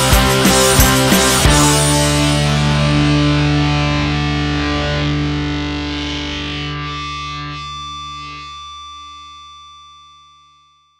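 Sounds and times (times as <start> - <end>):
distorted electric guitar chord: 0.0 - 9.7.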